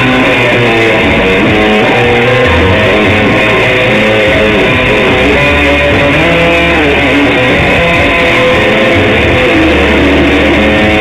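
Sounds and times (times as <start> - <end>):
electric guitar through amplifier: 0.0 - 11.0.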